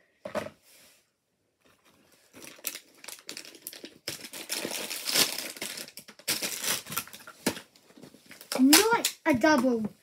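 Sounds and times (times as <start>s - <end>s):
plastic packet crinkling and tearing: 2.3s - 9.2s.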